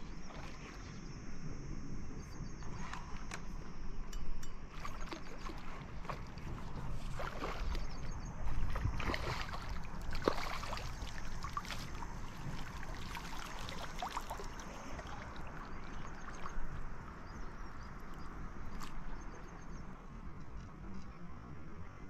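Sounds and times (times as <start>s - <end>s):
fish splashing and thrashing: 4.7s - 16.8s
net sloshing through water: 4.7s - 16.8s.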